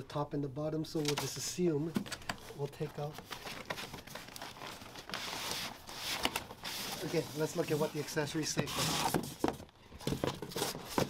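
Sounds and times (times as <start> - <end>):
cardboard rustling: 1.0 - 11.0
cardboard scraping: 5.1 - 8.1.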